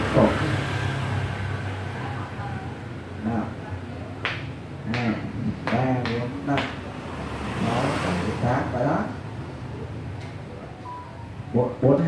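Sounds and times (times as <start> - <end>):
motor vehicle passing by: 0.0 - 12.0.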